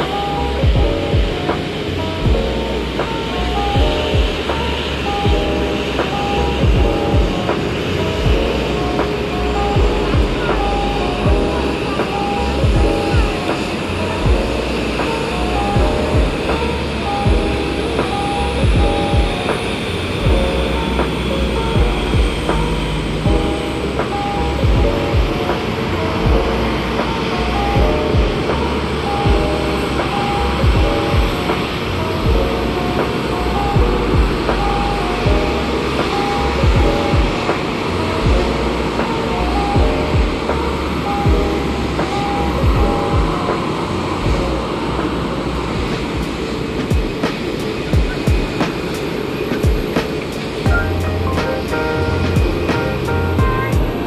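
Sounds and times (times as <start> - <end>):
background music with steady beat: 0.0 - 54.0.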